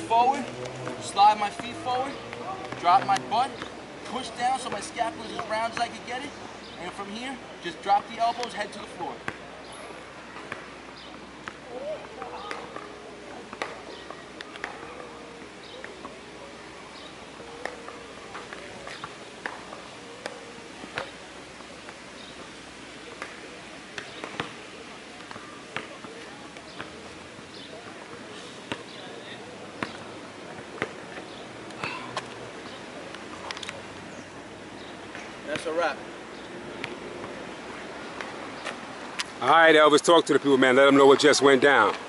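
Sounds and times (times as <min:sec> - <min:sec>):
faint distant voices: 0:00.0 - 0:42.0.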